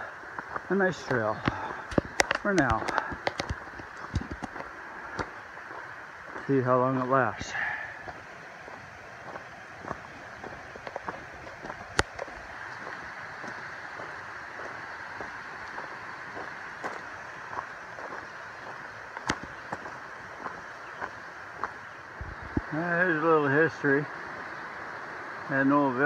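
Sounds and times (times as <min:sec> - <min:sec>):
footsteps crunching on dirt trail: 0:00.0 - 0:22.7
steady rushing hiss: 0:00.0 - 0:26.0
sharp clicks: 0:01.1 - 0:05.3.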